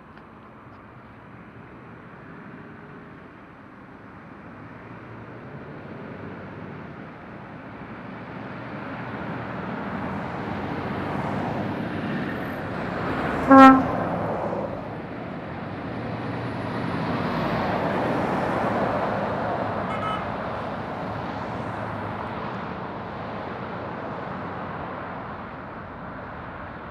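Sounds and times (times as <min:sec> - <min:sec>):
road traffic passing: 0:00.0 - 0:26.9
truck passing close by: 0:08.0 - 0:26.9
vehicle horn toot: 0:13.5 - 0:14.0, 0:19.9 - 0:20.4.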